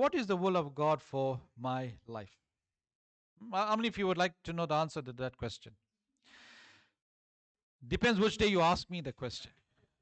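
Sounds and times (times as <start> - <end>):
man breathing in: 6.2 - 7.0.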